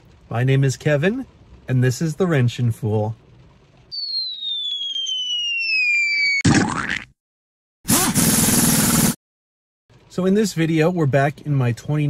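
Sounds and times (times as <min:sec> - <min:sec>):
whistle falling in pitch: 0:04.0 - 0:06.4
loud noisy blast: 0:07.9 - 0:09.2.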